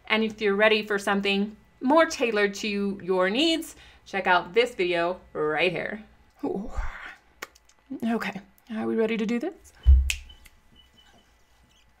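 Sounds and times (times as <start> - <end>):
low thump: 9.8 - 10.2.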